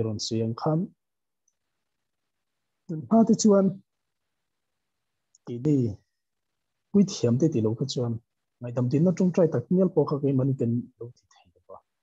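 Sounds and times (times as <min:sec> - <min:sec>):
man speaking over video call: 0:00.0 - 0:01.0, 0:02.8 - 0:04.0, 0:05.3 - 0:06.2, 0:06.9 - 0:12.0.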